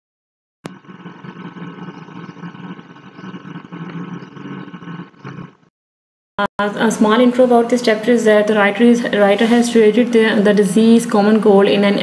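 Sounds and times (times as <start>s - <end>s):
steady low hum: 0.7s - 5.7s.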